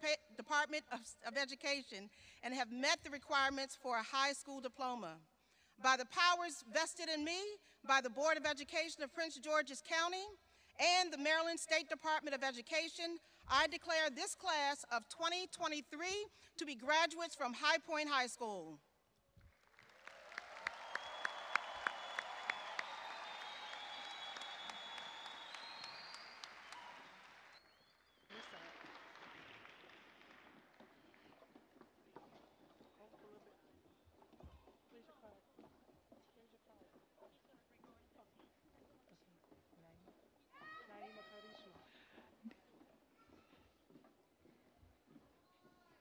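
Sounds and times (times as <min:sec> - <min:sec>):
sharp claps: 0:19.4 - 0:31.5
crowd cheering and applauding: 0:19.6 - 0:31.4.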